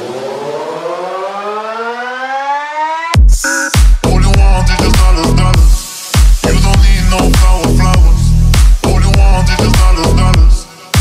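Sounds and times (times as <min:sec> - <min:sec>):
rising synth tone: 0:00.0 - 0:05.6
hiss: 0:04.9 - 0:08.8.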